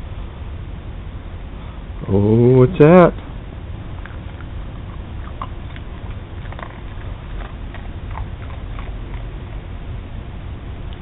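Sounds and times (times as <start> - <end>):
low background noise: 0.0 - 11.0
dog crunching biscuit: 3.9 - 10.0.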